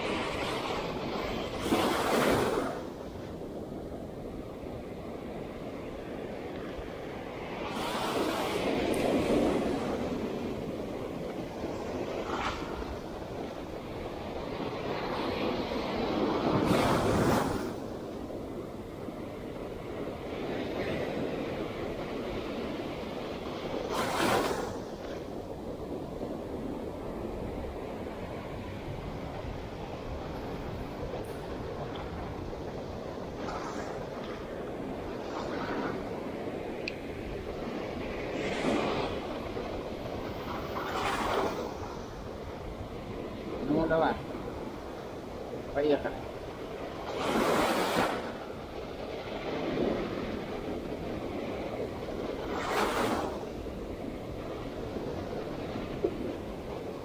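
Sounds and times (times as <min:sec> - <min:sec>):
surf washing up the shore: 0:00.0 - 0:57.0
waves breaking: 0:00.0 - 0:57.0.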